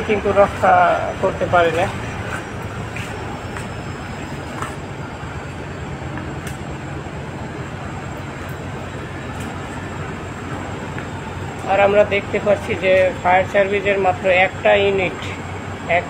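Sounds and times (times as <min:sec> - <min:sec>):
boat engine droning: 0:00.0 - 0:16.0.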